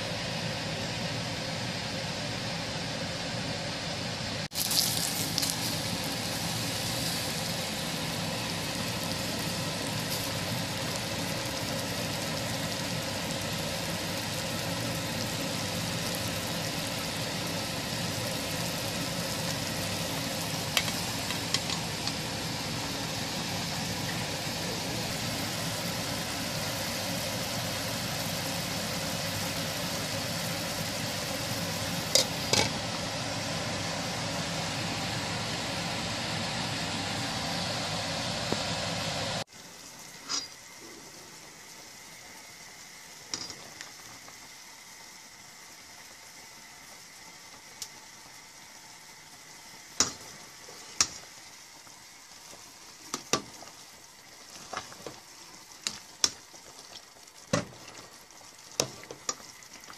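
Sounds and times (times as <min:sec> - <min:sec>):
water boiling in a pot: 0:00.0 - 0:59.9.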